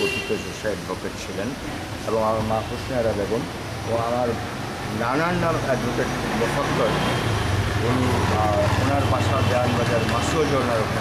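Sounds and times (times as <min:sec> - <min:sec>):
auto-rickshaw engine passing: 0:03.8 - 0:11.0.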